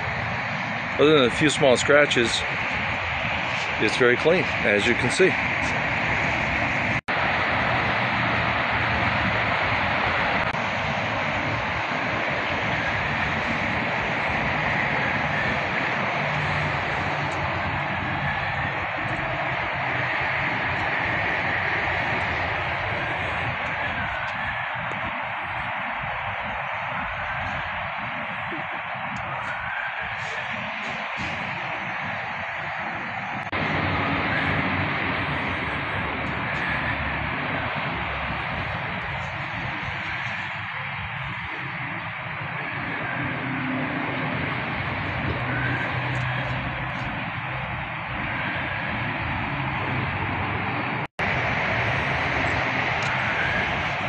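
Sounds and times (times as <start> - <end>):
constant rushing hiss: 0.0 - 54.0
low buffeting: 0.0 - 54.0.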